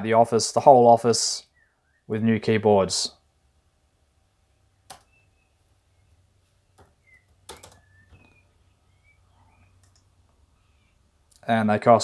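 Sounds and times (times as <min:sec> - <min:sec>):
faint keyboard keystrokes: 0:04.9 - 0:05.1, 0:06.7 - 0:08.4, 0:09.8 - 0:10.1.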